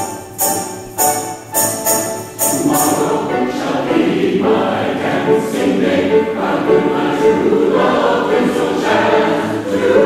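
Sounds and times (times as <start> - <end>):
mixed choir singing a carol: 0.0 - 10.0.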